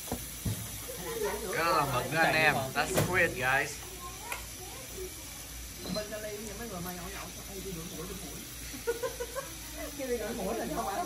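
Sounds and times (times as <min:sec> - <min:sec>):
squid sizzling on a griddle: 0:00.0 - 0:11.0.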